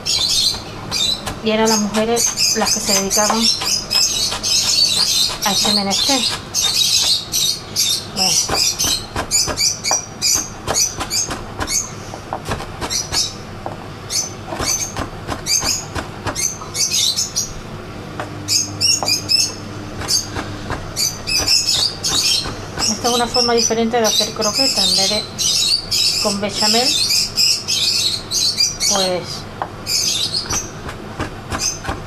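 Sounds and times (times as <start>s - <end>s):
knife chopping on wooden board: 0.0s - 7.2s, 8.3s - 13.8s, 14.5s - 16.6s, 19.0s - 23.5s, 30.4s - 32.0s
bird chirping: 0.0s - 13.4s, 14.1s - 17.6s, 18.5s - 30.9s, 31.5s - 32.0s.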